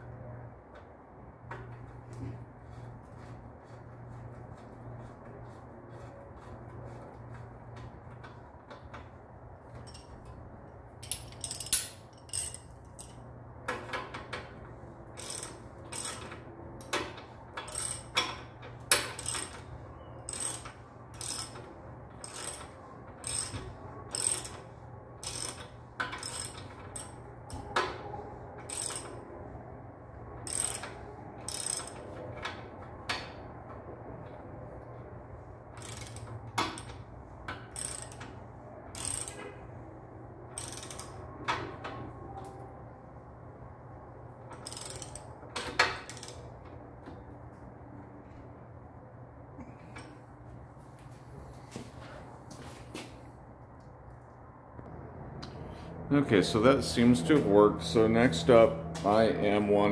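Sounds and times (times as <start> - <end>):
ratchet wrench clicking: 11.0 - 13.2, 15.2 - 19.6, 20.3 - 27.6, 28.7 - 29.2, 30.5 - 32.0, 35.8 - 38.3, 38.9 - 39.5, 40.5 - 41.2, 44.6 - 46.4.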